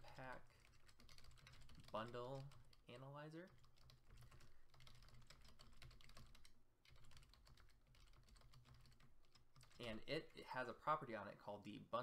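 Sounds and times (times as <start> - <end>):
computer keyboard typing: 0.0 - 10.5.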